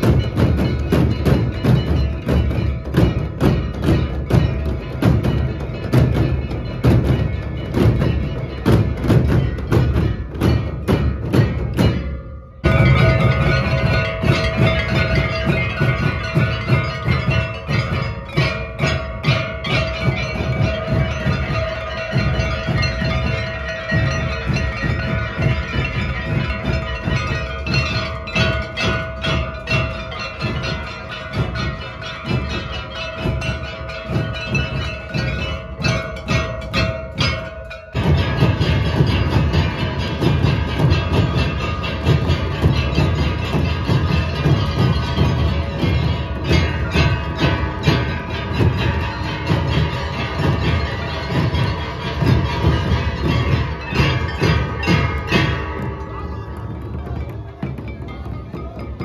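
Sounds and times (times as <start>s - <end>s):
steady ringing tone: 0.0s - 57.0s
drums beaten in steady rhythm: 0.0s - 59.0s.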